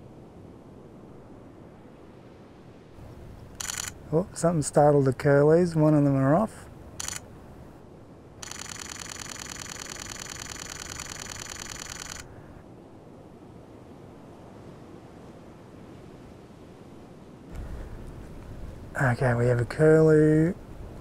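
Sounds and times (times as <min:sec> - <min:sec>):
faint wind: 0:00.0 - 0:21.0
camera shutter clicks: 0:03.6 - 0:04.0, 0:07.0 - 0:07.3, 0:08.4 - 0:12.3.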